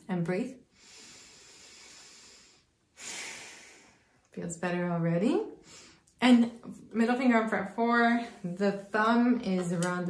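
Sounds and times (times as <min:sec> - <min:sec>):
woman breathing deeply: 0:00.7 - 0:04.3, 0:05.6 - 0:06.1.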